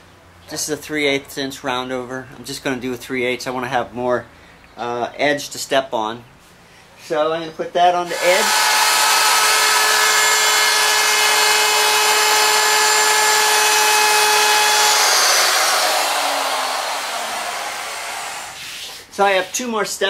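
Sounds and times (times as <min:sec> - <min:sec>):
electric wood router whining: 0:08.1 - 0:18.6.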